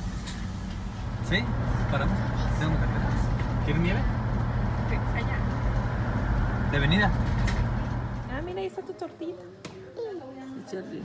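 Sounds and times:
car interior drone: 0:00.0 - 0:08.5.

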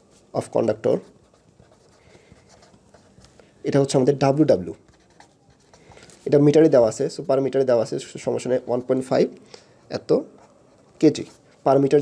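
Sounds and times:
pen writing on paper: 0:01.3 - 0:03.2, 0:04.9 - 0:06.0.

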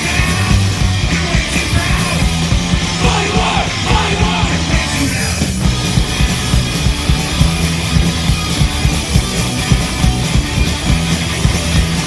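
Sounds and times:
bass guitar: 0:00.0 - 0:12.0
distorted electric guitar: 0:00.0 - 0:12.0
driving drum beat: 0:00.0 - 0:12.0.

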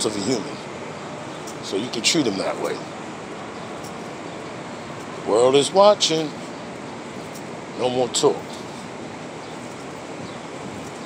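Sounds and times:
distant street traffic: 0:00.0 - 0:11.0
wind on microphone: 0:08.6 - 0:11.0.

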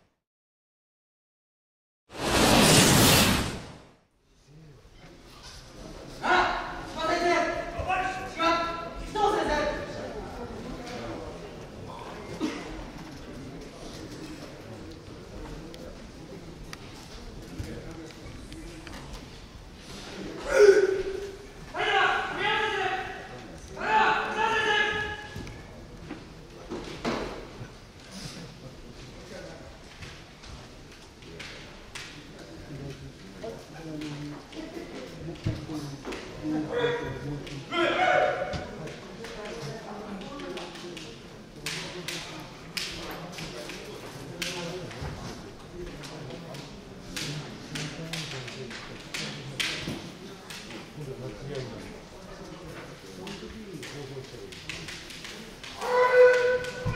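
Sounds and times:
person shouting in a hall: 0:20.4 - 0:25.4, 0:36.7 - 0:38.6, 0:55.8 - 0:56.9
bamboo swords tapping together: 0:31.0 - 0:32.4, 0:40.2 - 0:45.1, 0:45.9 - 0:51.0, 0:53.2 - 0:56.9.

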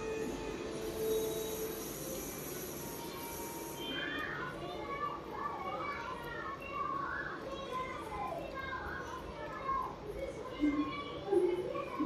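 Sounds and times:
children talking and calling out: 0:03.1 - 0:12.0.

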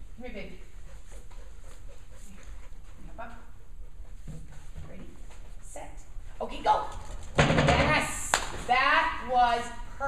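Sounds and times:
dog panting: 0:00.1 - 0:04.8.

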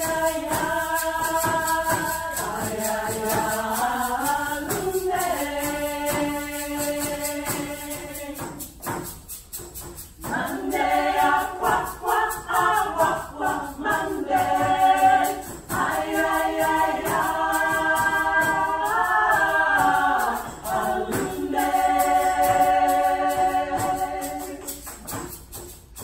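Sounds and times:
women singing in harmony: 0:00.0 - 0:08.8, 0:10.2 - 0:25.2.

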